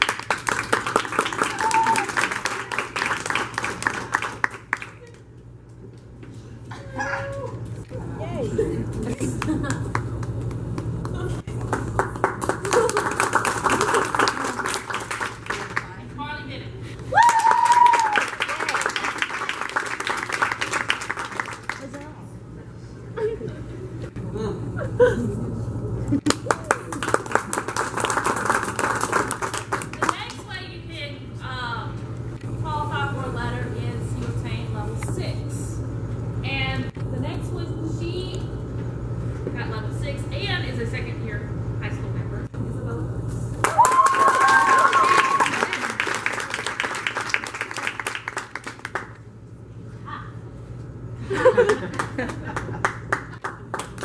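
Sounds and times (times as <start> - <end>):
audience clapping: 0.0 - 5.3, 9.2 - 16.1, 17.2 - 22.2, 26.2 - 30.4, 43.6 - 49.3, 51.4 - 54.0.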